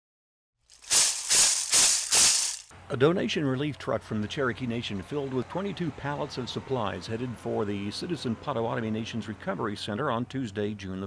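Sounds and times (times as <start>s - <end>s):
shaker struck in a steady beat: 0.7s - 2.7s.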